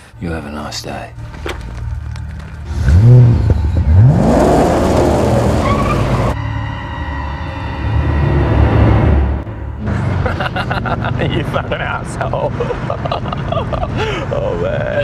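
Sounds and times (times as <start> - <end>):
car engine revving: 1.7 - 6.4.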